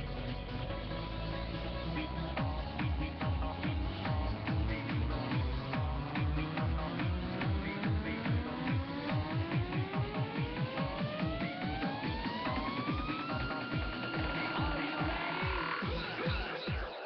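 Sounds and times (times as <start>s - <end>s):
rising synth tone: 0.0s - 16.7s
fast kick drum: 2.4s - 16.9s.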